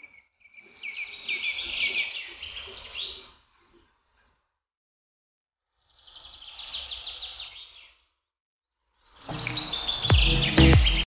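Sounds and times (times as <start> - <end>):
bird chirping: 0.0 - 4.5, 5.8 - 8.2, 9.0 - 11.0.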